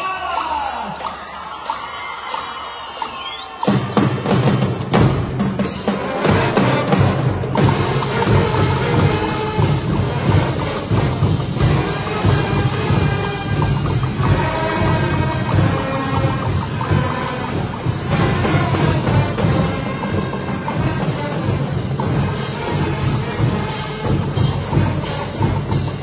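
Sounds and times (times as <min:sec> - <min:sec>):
marching band playing: 0:00.0 - 0:26.0.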